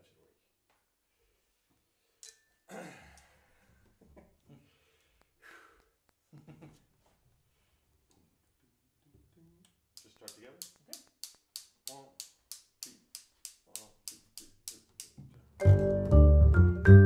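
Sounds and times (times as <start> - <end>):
double bass: 15.6 - 17.0
vibraphone: 15.6 - 17.0.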